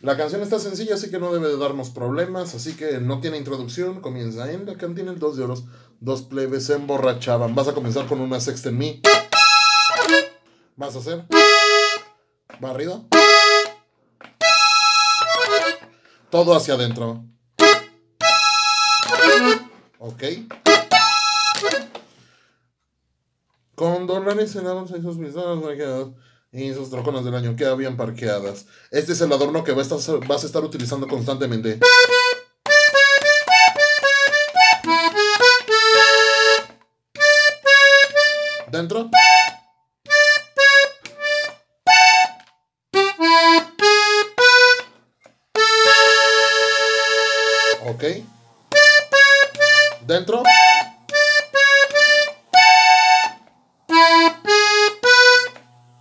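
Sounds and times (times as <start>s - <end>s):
accordion chord: 9.0s - 10.5s, 11.3s - 12.2s, 13.1s - 16.1s, 17.6s - 22.1s, 31.8s - 56.0s.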